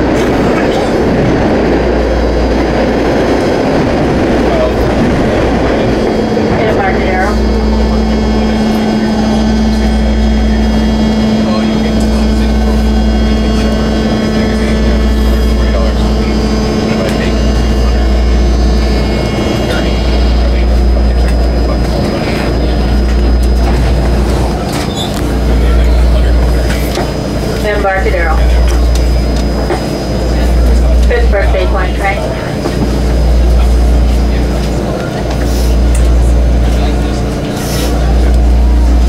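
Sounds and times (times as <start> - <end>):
electric propulsion whine: 0.0 - 39.0
train rumbling: 0.0 - 39.0.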